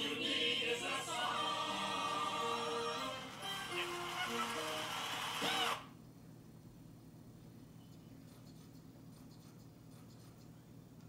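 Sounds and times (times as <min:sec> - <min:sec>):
show music from tv: 0:00.0 - 0:05.9
faint room hiss: 0:00.0 - 0:11.0.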